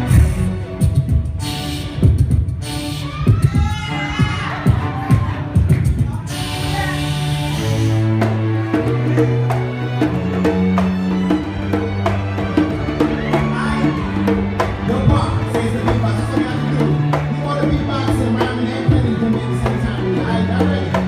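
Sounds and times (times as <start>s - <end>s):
strings playing low notes: 4.4s - 21.0s.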